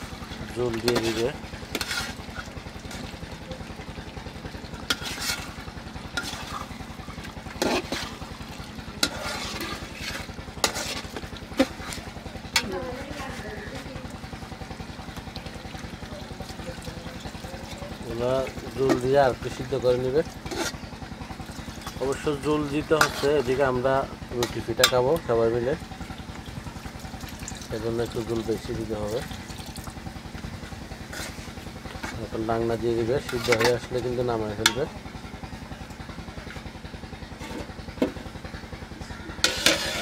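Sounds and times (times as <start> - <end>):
metal spoon scraping pot: 0.0 - 2.4, 4.8 - 6.8, 7.5 - 8.3, 9.0 - 13.7, 18.1 - 20.9, 21.6 - 25.5, 31.1 - 34.8, 39.4 - 40.0
food sizzling: 0.0 - 35.0, 39.4 - 40.0.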